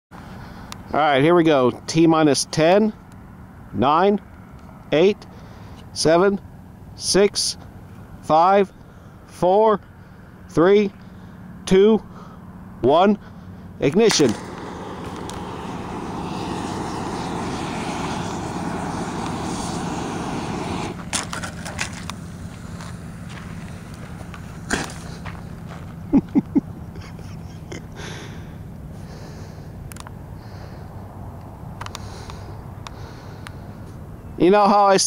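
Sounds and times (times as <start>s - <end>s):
rocket motor hissing rush: 13.8s - 25.5s
sharp pops: 14.0s - 22.8s
person laughing: 26.1s - 28.3s.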